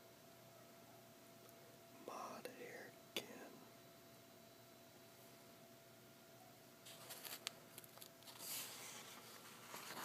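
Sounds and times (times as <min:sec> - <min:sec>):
soft whisper: 0:02.0 - 0:03.8.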